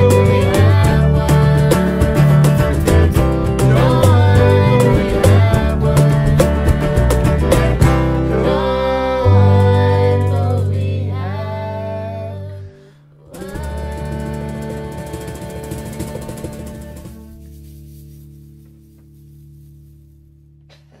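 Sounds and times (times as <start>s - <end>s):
voices singing: 0.0s - 17.2s.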